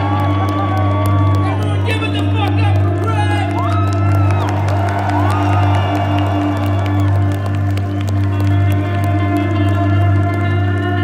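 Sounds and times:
faint crowd: 0:00.0 - 0:11.0
instrumental rock band playing: 0:00.0 - 0:11.0.

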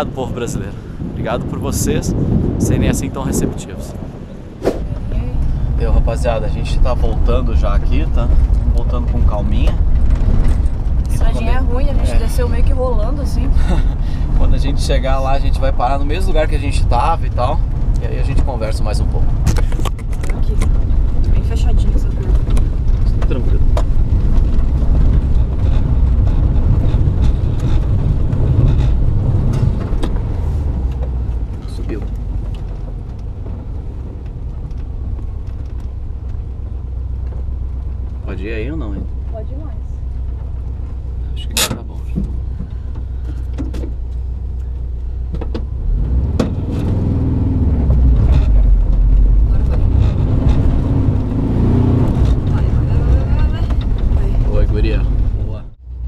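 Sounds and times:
vehicle rumbling on gravel road: 0:00.0 - 0:56.0
knocks and rattles: 0:07.1 - 0:12.5, 0:16.9 - 0:38.2, 0:47.7 - 0:55.4.

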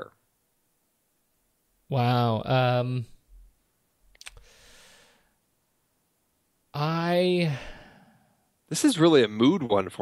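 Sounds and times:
soft breath on microphone: 0:04.4 - 0:05.4.

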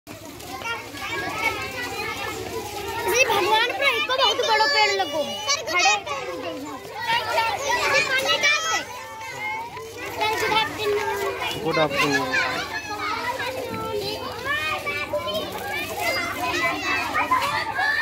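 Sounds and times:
children talking and calling out: 0:00.1 - 0:18.0.

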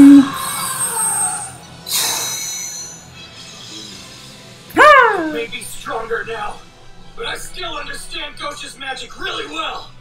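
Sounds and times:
background music: 0:04.5 - 0:05.8.

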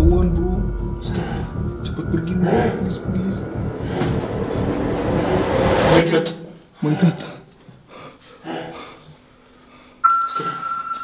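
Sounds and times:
steady high-pitched tone: 0:00.0 - 0:06.2.

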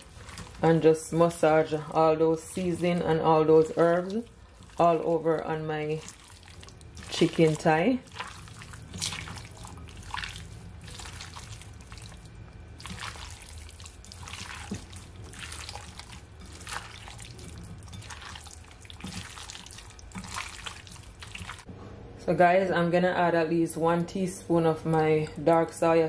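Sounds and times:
hand squelching raw chicken: 0:03.6 - 0:21.7.

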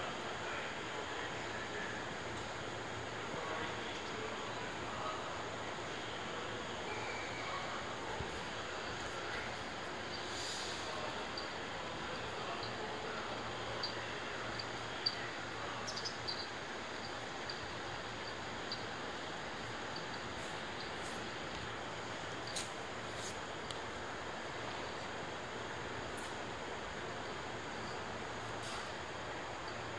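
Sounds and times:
electric train hissing: 0:05.3 - 0:21.4.

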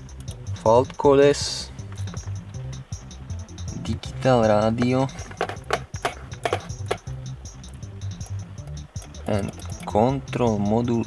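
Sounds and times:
music with steady beat: 0:00.0 - 0:11.0
sharp clicks or knocks: 0:04.8 - 0:07.1.

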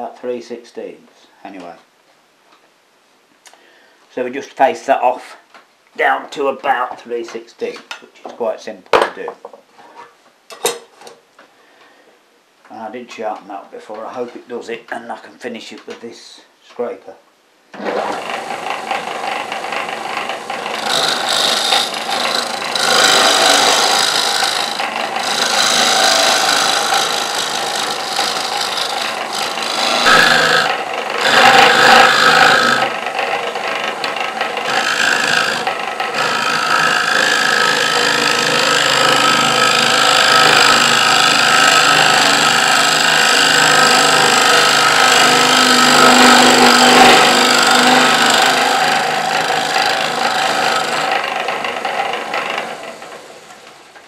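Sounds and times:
lathe running: 0:17.8 - 0:53.7
scraper rasping on spinning wood: 0:18.0 - 0:52.9.

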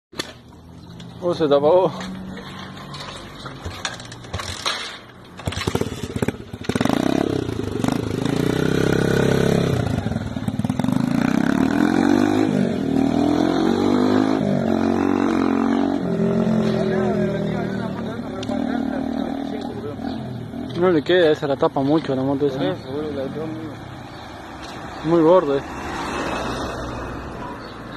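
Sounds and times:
motorcycle engine accelerating: 0:05.4 - 0:21.1.

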